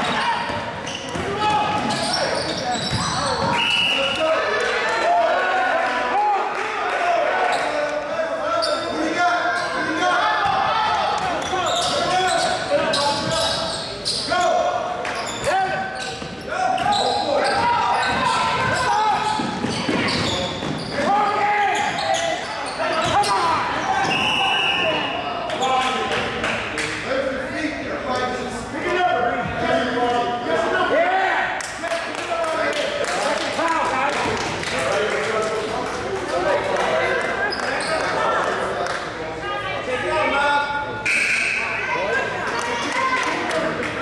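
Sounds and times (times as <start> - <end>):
spectators' voices: 0.0 - 44.0
whistle blast: 3.5 - 4.2, 24.0 - 25.3, 41.0 - 41.9.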